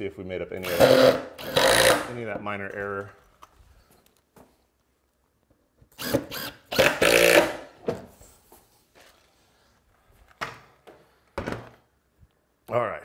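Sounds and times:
handheld power tool running: 0:00.6 - 0:02.1, 0:05.9 - 0:07.6.

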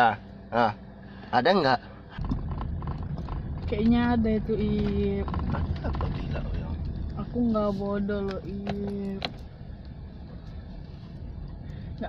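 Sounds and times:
car cabin rumble: 0:02.0 - 0:12.0.

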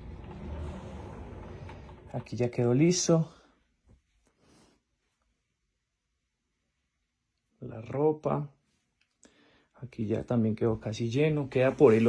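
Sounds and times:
wooden door opening: 0:00.0 - 0:02.5.

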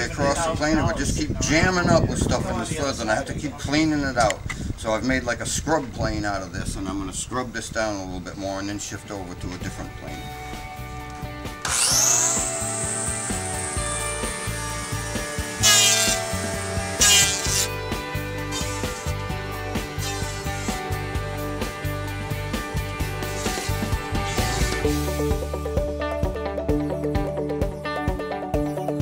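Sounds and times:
background music: 0:09.9 - 0:29.0
electric hand planer whining: 0:10.1 - 0:25.3.

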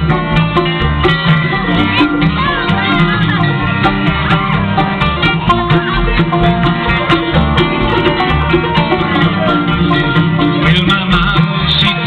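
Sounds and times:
bluegrass band playing: 0:00.0 - 0:12.0
upright bass pulsing beat: 0:00.0 - 0:12.0.

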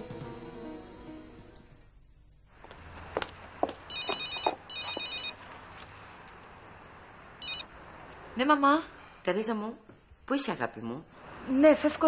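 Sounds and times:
warbling electronic ringtone: 0:07.4 - 0:07.6.

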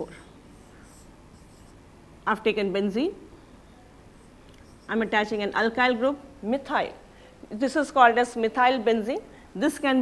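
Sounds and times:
marker pen on whiteboard: 0:00.0 - 0:01.8, 0:04.1 - 0:05.7.

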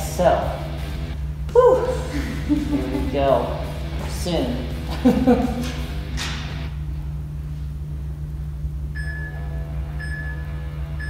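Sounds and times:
low steady hum: 0:00.0 - 0:11.0
interval timer beeps: 0:09.0 - 0:11.0.

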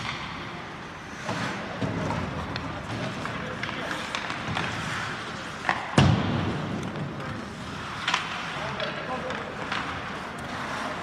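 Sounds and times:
hockey sticks clicking: 0:00.0 - 0:11.0
skates on ice: 0:00.0 - 0:11.0.

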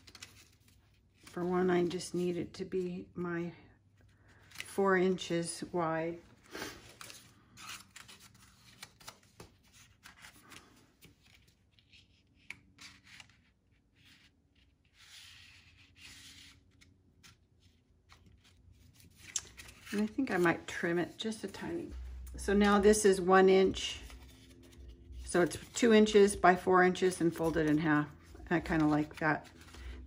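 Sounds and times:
paper rustling and rubbing: 0:06.5 - 0:23.2, 0:23.8 - 0:30.0.

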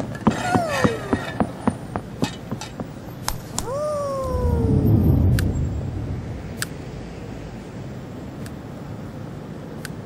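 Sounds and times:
meow-like vocal sound effect: 0:03.6 - 0:05.2
low rumble: 0:03.6 - 0:08.4.

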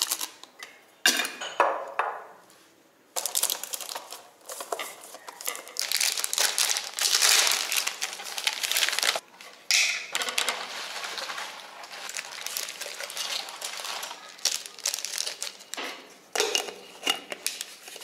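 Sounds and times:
plastic packaging crinkling: 0:00.0 - 0:00.5, 0:03.2 - 0:09.2, 0:10.1 - 0:15.8.

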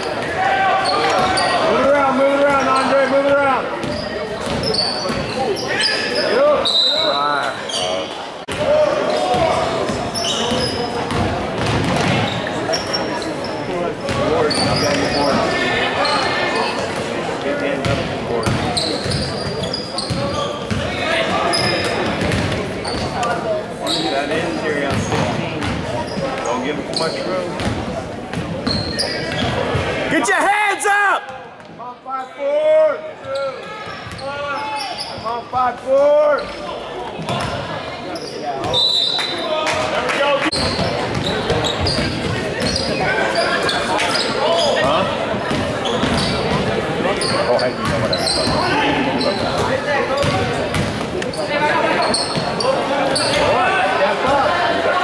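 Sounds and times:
sneakers squeaking: 0:00.0 - 0:30.2, 0:33.2 - 0:35.6, 0:36.4 - 0:39.9, 0:40.5 - 0:53.6
crowd chatter: 0:00.0 - 0:55.0.

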